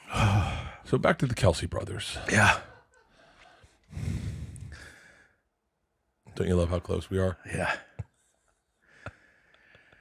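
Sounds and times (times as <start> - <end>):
man sighing: 0.0 - 0.8, 2.2 - 2.8, 3.4 - 5.3.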